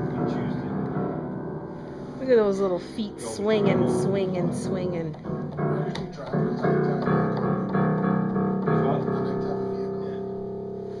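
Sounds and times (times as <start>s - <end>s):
piano chords struck unevenly: 0.0s - 11.0s.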